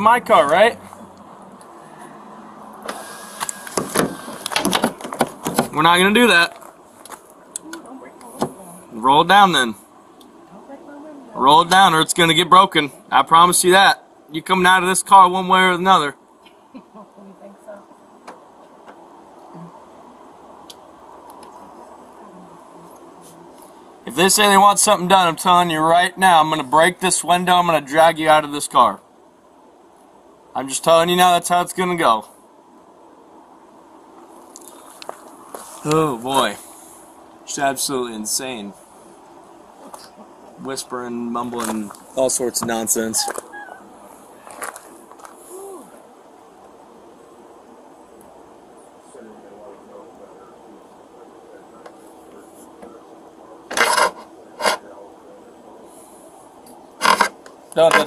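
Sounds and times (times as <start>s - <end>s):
faint hum: 0.0s - 58.0s
power window motor: 2.8s - 4.8s
faint low mumbling: 48.8s - 57.2s.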